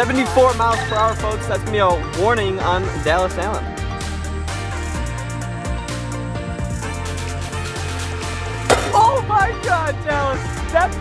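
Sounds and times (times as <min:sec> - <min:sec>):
ball smacking a target: 0:08.7 - 0:09.3.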